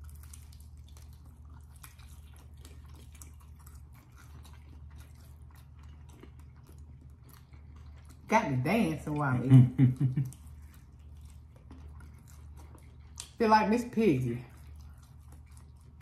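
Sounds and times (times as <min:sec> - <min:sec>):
chewing with wet mouth clicks: 0:00.0 - 0:16.0
steady low hum: 0:00.0 - 0:16.0.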